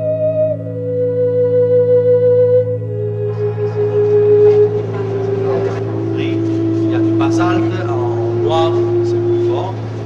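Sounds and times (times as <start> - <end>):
held tone dropping in pitch: 0.0 - 10.0
steady low hum: 0.0 - 10.0
indistinct voices of people: 2.9 - 10.0.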